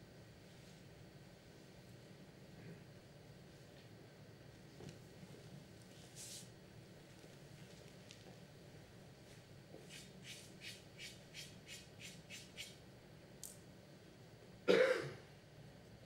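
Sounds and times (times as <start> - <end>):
soft scraping strokes: 5.9 - 6.5
person coughing: 14.7 - 15.3.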